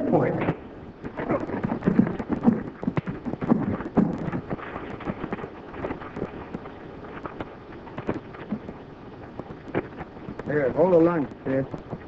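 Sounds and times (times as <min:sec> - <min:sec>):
old film hiss and crackle: 0:00.0 - 0:12.0
horse hooves on rocky ground: 0:00.2 - 0:12.0.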